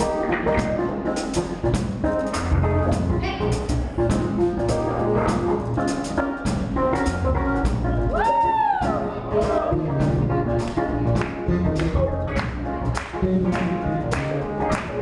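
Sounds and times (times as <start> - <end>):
bass line: 0.0 - 15.0
pop-rock band playing: 0.0 - 15.0.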